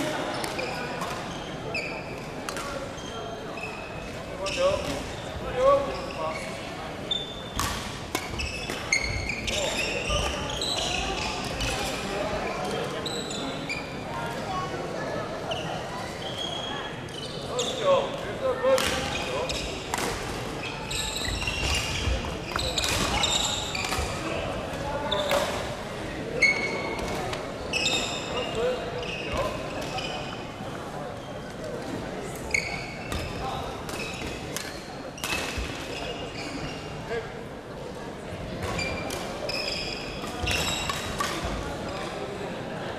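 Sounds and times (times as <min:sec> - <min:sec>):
many voices: 0:00.0 - 0:42.9
sneakers squeaking on wooden court: 0:00.4 - 0:12.0, 0:12.7 - 0:14.0, 0:15.5 - 0:18.0, 0:18.8 - 0:25.6, 0:26.4 - 0:31.5, 0:32.5 - 0:37.0, 0:38.6 - 0:42.0.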